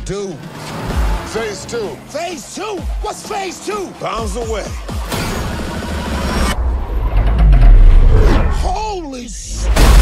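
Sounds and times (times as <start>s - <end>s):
deep bass swell: 5.4s - 8.8s.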